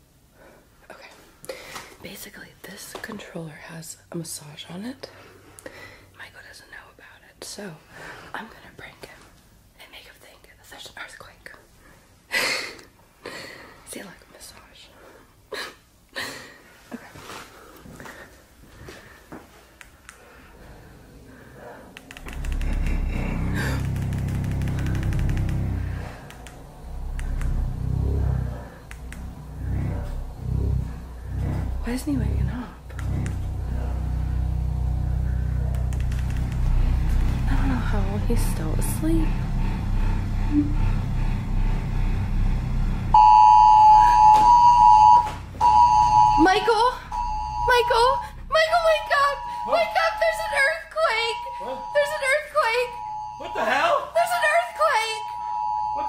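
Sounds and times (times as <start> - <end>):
massage motor vibrating hum: 22.1 - 53.9
loud steady high tone: 25.4 - 56.0
gliding voice: 25.8 - 43.1.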